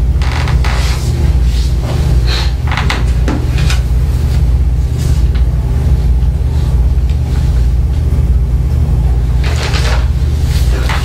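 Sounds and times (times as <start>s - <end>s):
low rumble of room noise: 0.0s - 11.0s.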